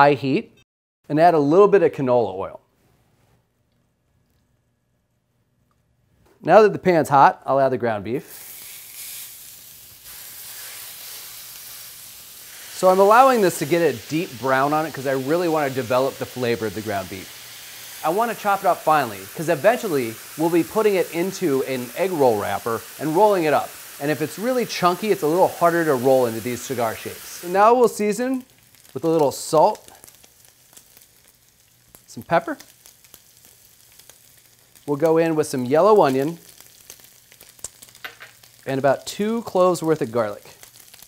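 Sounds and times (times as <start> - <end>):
meat sizzling in a skillet: 8.2 - 41.0.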